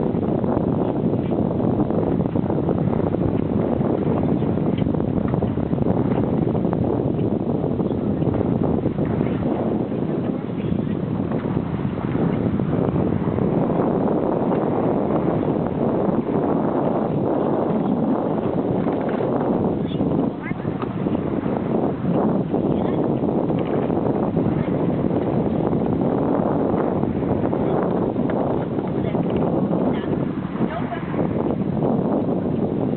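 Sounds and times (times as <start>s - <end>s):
wind rumbling on microphone: 0.0s - 32.9s.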